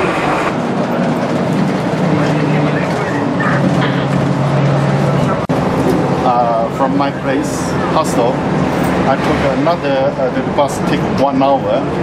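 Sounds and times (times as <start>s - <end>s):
bus engine and road noise: 0.0s - 12.0s
man talking: 6.2s - 8.4s, 9.1s - 12.0s.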